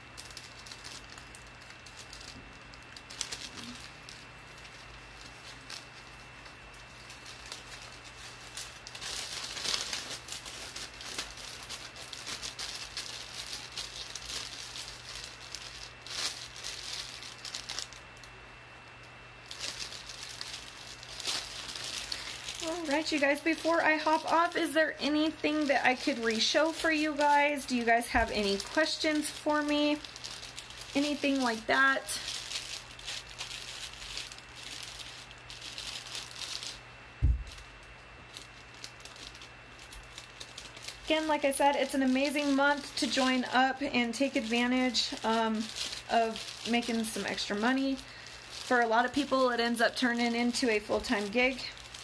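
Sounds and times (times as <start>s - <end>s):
plastic bag crinkling: 0.0s - 52.0s
small objects clicking and rattling: 0.2s - 18.3s, 19.5s - 36.8s, 37.4s - 52.0s
dull thump: 37.2s - 37.5s.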